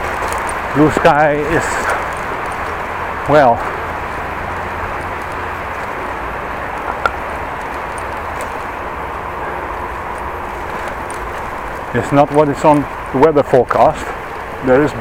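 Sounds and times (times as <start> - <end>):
bicycle tyres rolling on pavers: 0.0 - 15.0.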